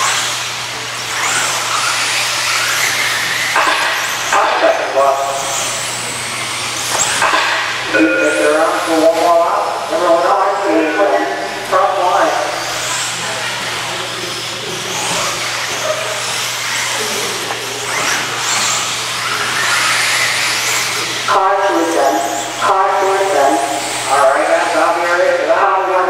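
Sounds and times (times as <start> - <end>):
rc car motors whining: 0.0 - 26.0
man talking: 4.3 - 5.6, 7.9 - 12.7, 21.1 - 26.0.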